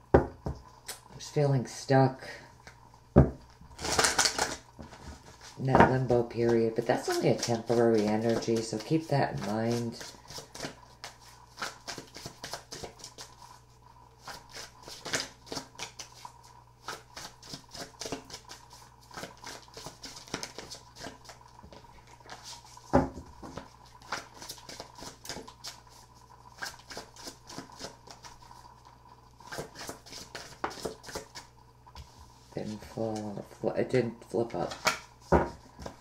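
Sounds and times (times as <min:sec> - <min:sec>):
cards being shuffled: 0:03.8 - 0:05.6, 0:06.4 - 0:13.4, 0:14.2 - 0:22.8, 0:23.4 - 0:28.5, 0:29.4 - 0:31.5, 0:34.6 - 0:36.0.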